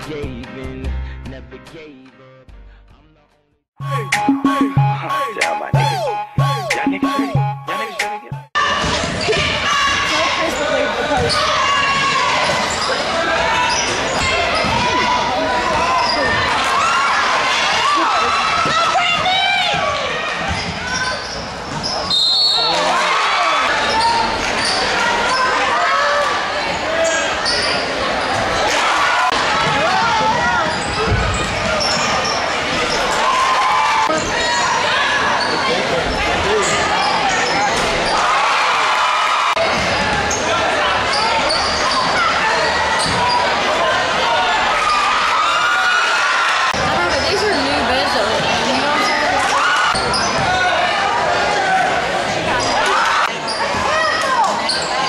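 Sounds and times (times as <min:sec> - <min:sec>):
crowd voices and shouts: 0:03.8 - 0:55.0
sneakers squeaking: 0:11.2 - 0:11.5, 0:20.4 - 0:22.6, 0:30.3 - 0:33.1, 0:39.7 - 0:43.5, 0:48.9 - 0:50.5.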